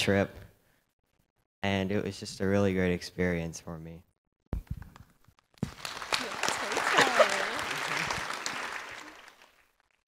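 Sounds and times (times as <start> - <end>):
audience applauding: 5.5 - 10.0
voices over clapping: 5.6 - 9.6.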